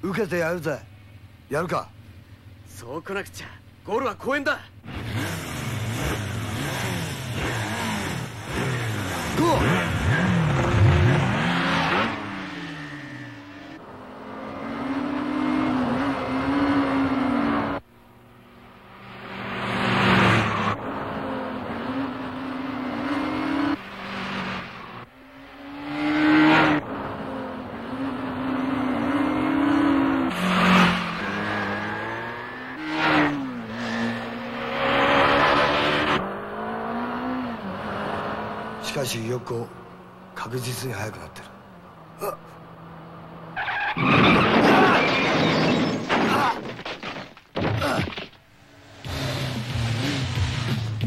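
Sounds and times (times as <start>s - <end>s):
motorcycle engines revving hard: 4.8s - 17.8s, 19.8s - 25.0s, 25.7s - 40.4s, 49.0s - 51.0s.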